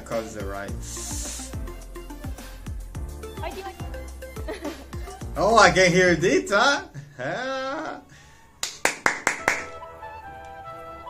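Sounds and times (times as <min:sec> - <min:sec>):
hand claps: 0:08.6 - 0:09.8.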